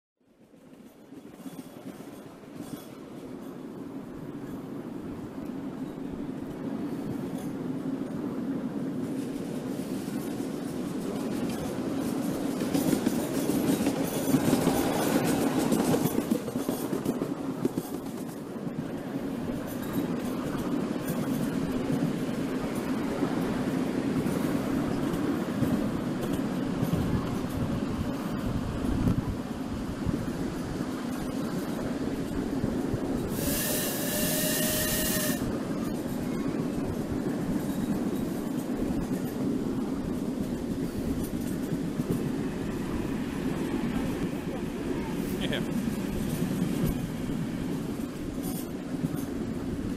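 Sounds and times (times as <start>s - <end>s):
small wheels clattering on track: 0.6s - 4.7s, 9.1s - 49.9s
steam whistle blowing: 33.3s - 35.6s.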